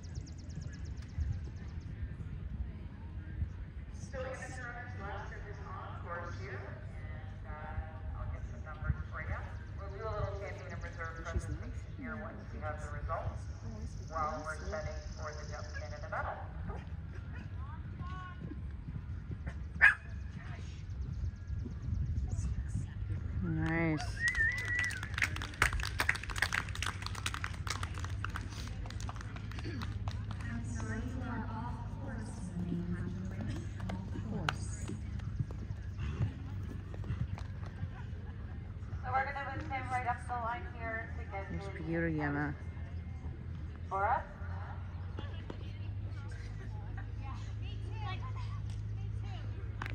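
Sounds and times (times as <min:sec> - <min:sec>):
faint voices: 0:00.0 - 0:49.9
steady low rumble: 0:00.0 - 0:49.9
dog barking: 0:19.8 - 0:20.1
horse hooves on sand: 0:27.0 - 0:44.3.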